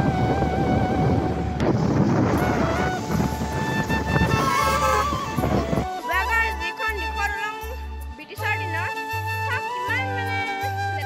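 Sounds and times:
background music: 0:00.0 - 0:11.0
road traffic passing: 0:02.4 - 0:05.7.

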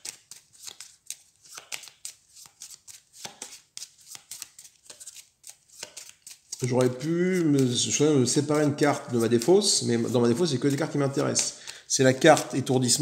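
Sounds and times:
cards being shuffled: 0:00.0 - 0:13.0.

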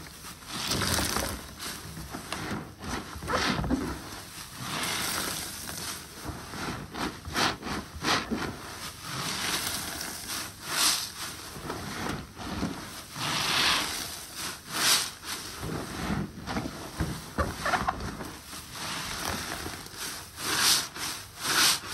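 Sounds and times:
wet sponges squelching: 0:00.0 - 0:21.9.

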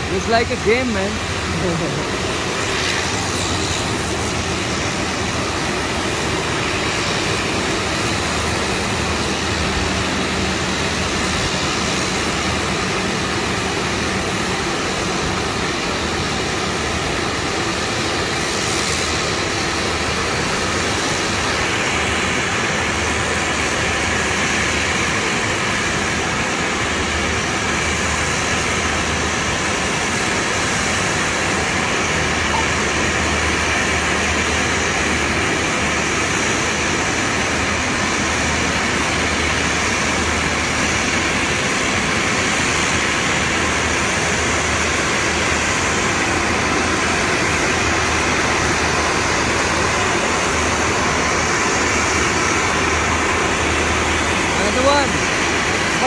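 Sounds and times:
turboprop airplane engine drone: 0:00.0 - 0:56.0.

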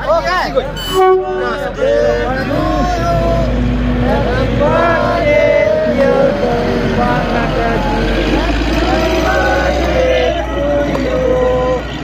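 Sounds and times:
people talking or singing: 0:00.0 - 0:12.0
steady low rumble: 0:01.4 - 0:12.0.

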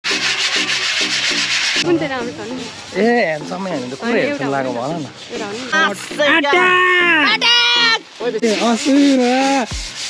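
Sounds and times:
hand-sanding steel bars: 0:00.0 - 0:06.2, 0:08.2 - 0:10.0.

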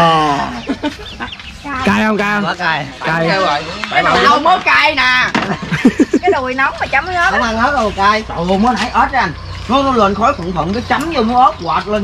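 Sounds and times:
man speaking: 0:01.8 - 0:04.4.

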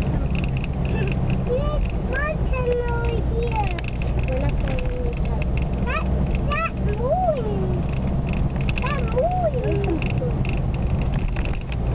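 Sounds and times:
car engine hum from inside: 0:00.0 - 0:11.9.

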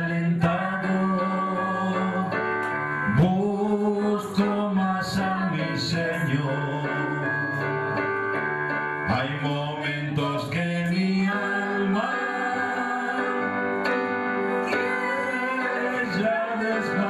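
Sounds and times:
man and woman singing: 0:00.0 - 0:02.5, 0:03.1 - 0:08.0, 0:09.1 - 0:13.8, 0:14.5 - 0:17.0
keyboard accompaniment: 0:00.0 - 0:17.0.

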